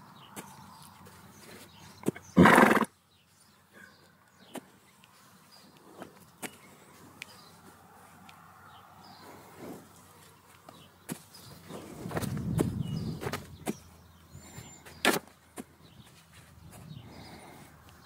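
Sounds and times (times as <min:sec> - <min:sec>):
horse snorting: 0:02.2 - 0:02.9.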